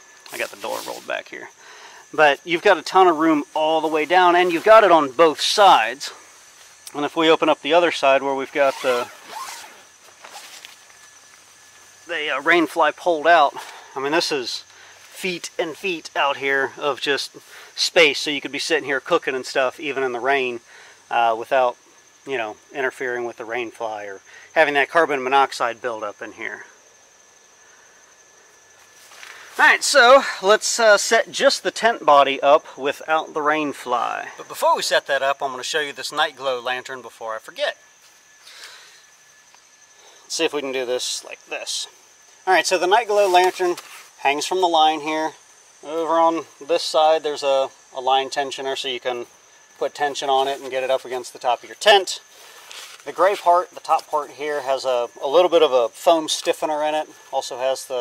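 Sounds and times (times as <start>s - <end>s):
faint steady hiss: 0.0s - 58.0s
high-pitched insect buzz: 0.0s - 58.0s
tent fabric rustling: 8.4s - 11.3s, 43.0s - 44.2s, 52.6s - 53.4s.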